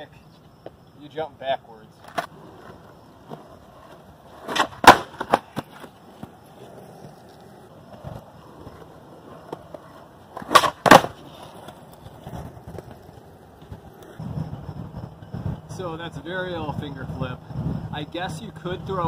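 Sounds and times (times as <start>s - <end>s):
skateboard wheels rolling on concrete: 0.0s - 19.0s
skateboard clacking on ground: 1.8s - 15.7s.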